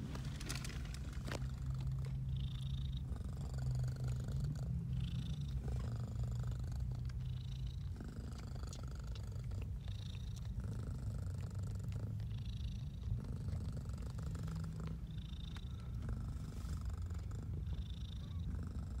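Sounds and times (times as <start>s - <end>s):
cat purring: 0.0s - 19.0s.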